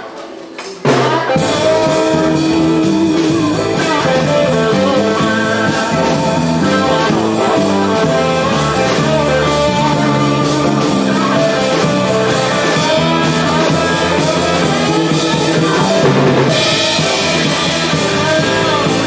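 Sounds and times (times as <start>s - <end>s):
drum kit with cymbals: 0.0s - 19.0s
stepping bass line: 1.3s - 19.0s
grand piano playing: 1.4s - 19.0s.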